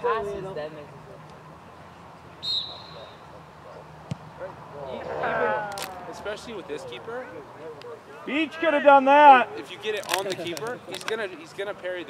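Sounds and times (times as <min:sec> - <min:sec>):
referee whistle blast: 0:02.4 - 0:03.2.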